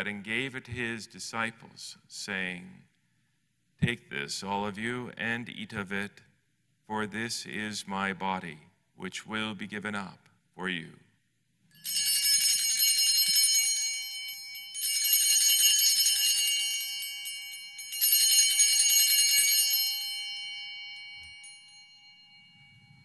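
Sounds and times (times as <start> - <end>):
altar bells jingling: 11.8 - 23.0.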